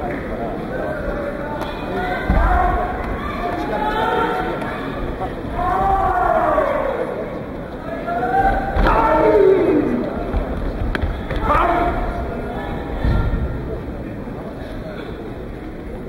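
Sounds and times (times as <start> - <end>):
crowd shouting long calls: 1.7 - 10.3, 11.3 - 13.4.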